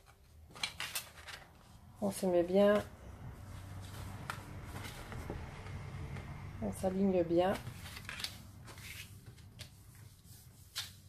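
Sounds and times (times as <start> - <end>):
card stock rustling and scraping: 0.0 - 1.8, 3.4 - 6.2, 7.4 - 11.0.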